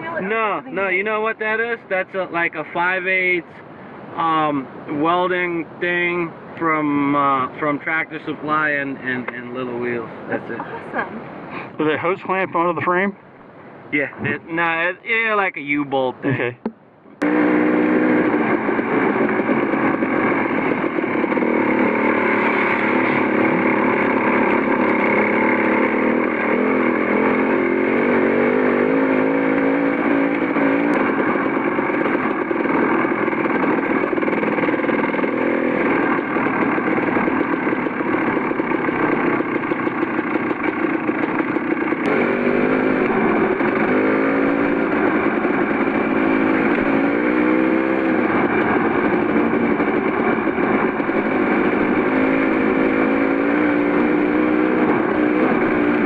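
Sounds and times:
dirt bike engine running: 16.3s - 56.0s.

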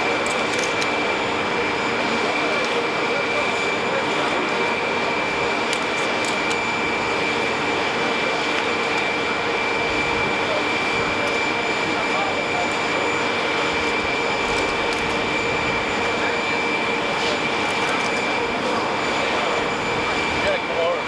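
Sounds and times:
high-pitched whine: 0.0s - 21.0s
jet engines running: 0.0s - 21.0s.

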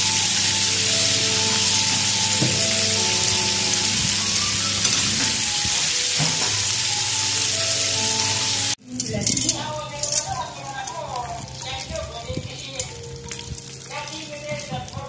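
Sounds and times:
chicken frying in oil: 0.0s - 15.0s.

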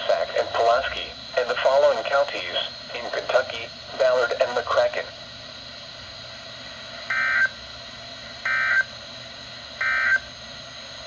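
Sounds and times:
radio hiss: 0.0s - 10.5s.

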